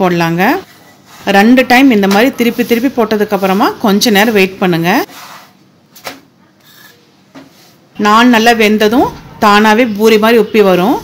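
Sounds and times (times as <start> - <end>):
wooden spatula scraping a pan: 2.4 - 5.6.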